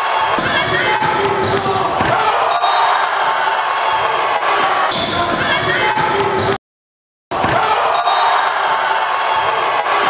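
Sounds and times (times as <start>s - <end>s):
crowd voices: 0.0s - 6.6s, 7.4s - 10.0s.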